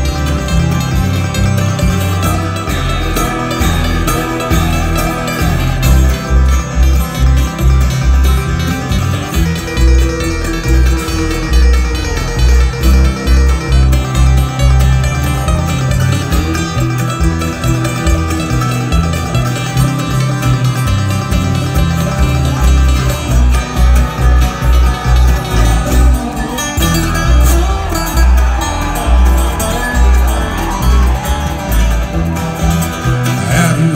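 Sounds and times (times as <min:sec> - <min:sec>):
bluegrass string band playing: 0:00.0 - 0:33.9
upright bass pulsing: 0:00.0 - 0:33.9.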